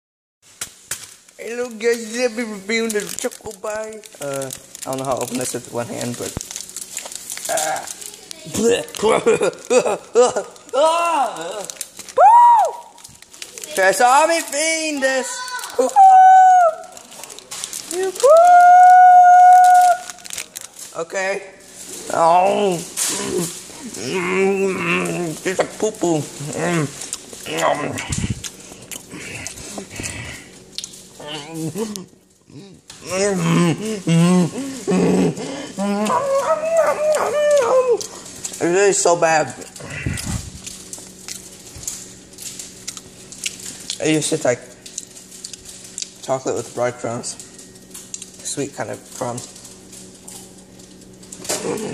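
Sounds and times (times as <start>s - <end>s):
person chewing: 2.7s - 13.8s, 26.4s - 38.6s, 39.6s - 44.0s, 44.8s - 46.2s
person crying aah in effort: 10.7s - 12.8s, 33.3s - 38.1s.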